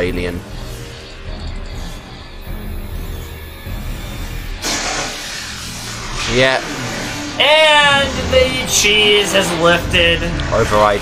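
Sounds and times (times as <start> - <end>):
background music with low tones: 0.0 - 11.0
electric zap: 2.9 - 8.5.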